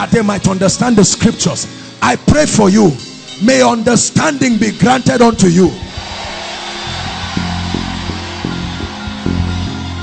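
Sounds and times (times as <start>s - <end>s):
sustained low music chords: 5.8s - 10.0s.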